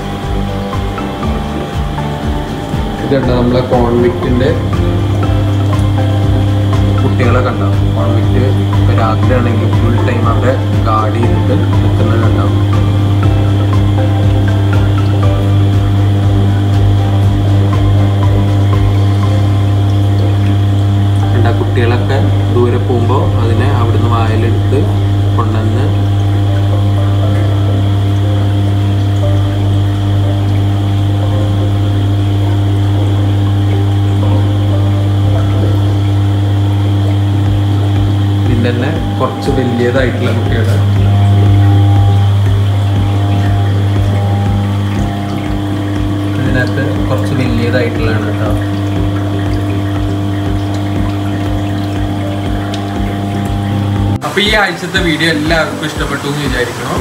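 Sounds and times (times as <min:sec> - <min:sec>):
aquarium air pump humming: 0:00.0 - 0:57.0
water bubbling: 0:00.0 - 0:57.0.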